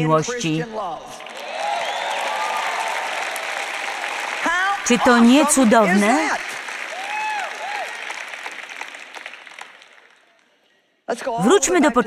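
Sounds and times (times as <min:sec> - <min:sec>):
audience applauding: 0:01.1 - 0:10.6.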